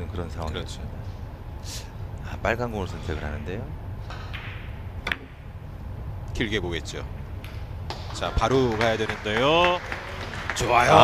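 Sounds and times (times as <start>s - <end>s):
billiard balls clicking: 4.1s - 5.4s.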